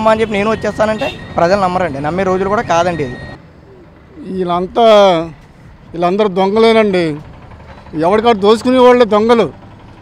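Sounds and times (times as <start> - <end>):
men speaking: 0.0 - 3.4, 4.0 - 9.6
faint street background: 0.0 - 10.0.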